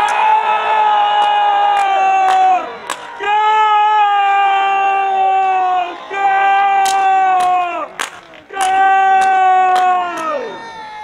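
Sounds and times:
person shouting goal: 8.5s - 11.0s.

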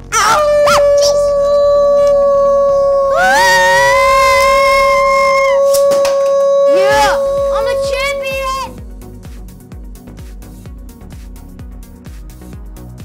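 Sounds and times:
voices yelling long note: 0.0s - 8.8s
higher voice swooping up: 0.1s - 8.8s.

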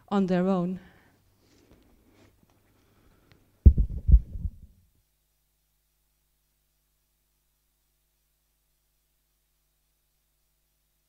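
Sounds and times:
thumps on headset microphone: 3.6s - 4.7s.

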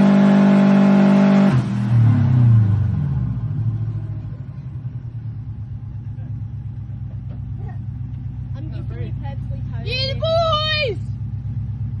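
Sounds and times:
car engine rumbling: 0.0s - 12.0s
person shouting high-pitched: 9.8s - 11.1s.

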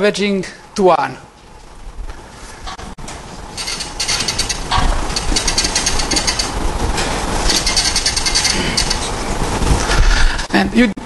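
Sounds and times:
marker squeaking on whiteboard: 3.6s - 6.6s.

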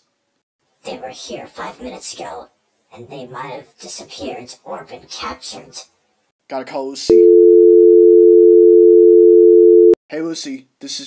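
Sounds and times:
two-pitch telephone tone: 7.1s - 10.0s.

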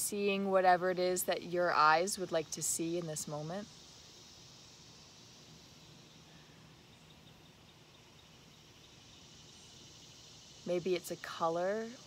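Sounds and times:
insects hissing: 0.0s - 12.0s.

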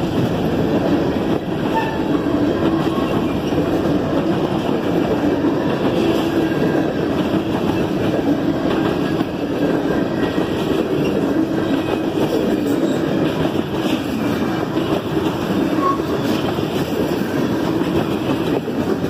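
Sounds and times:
freight train wheels rumbling on rails: 0.0s - 19.0s.

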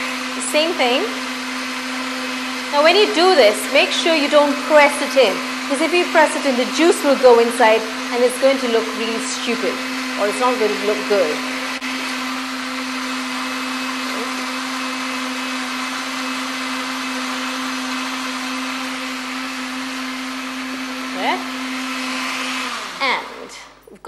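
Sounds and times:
electric blender running: 0.0s - 23.7s.

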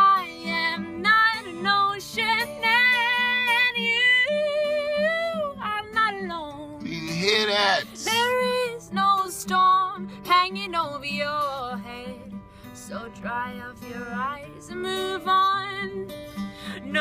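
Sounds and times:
woman singing folk song: 0.0s - 6.8s, 7.9s - 17.0s
acoustic guitar strumming: 0.2s - 17.0s.

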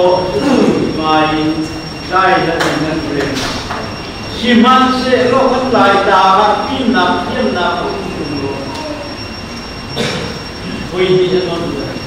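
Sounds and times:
faint high whine: 0.0s - 12.0s
steady background noise: 0.0s - 12.0s
person speaking: 4.2s - 9.2s.

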